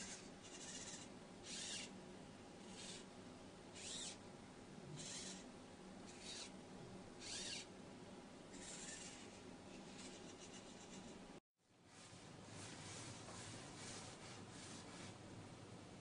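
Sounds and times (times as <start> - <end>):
faint servo motor whirs: 0.0 - 2.0, 2.6 - 3.1, 3.7 - 4.2, 4.9 - 5.5, 6.1 - 6.6, 7.2 - 7.7, 8.5 - 11.2.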